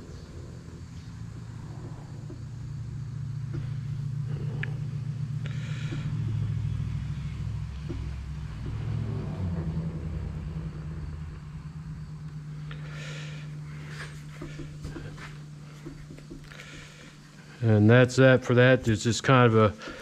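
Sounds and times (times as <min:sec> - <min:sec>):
motor rumbling: 0:00.0 - 0:20.0.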